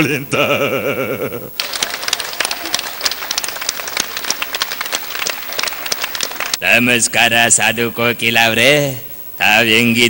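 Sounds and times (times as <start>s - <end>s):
audience applauding: 1.6s - 6.6s.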